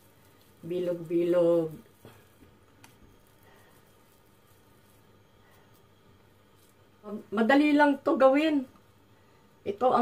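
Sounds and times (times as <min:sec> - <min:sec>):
hands rolling minced meat: 0:00.0 - 0:07.8.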